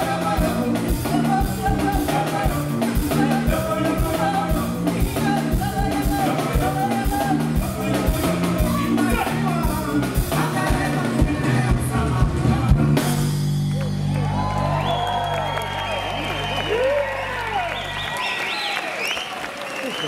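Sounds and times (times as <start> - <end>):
live band playing: 0.0 - 18.5
audience cheering and whistling: 13.6 - 20.0.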